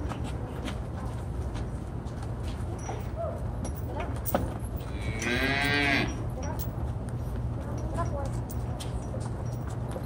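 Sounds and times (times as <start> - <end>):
cow mooing: 4.9 - 6.2.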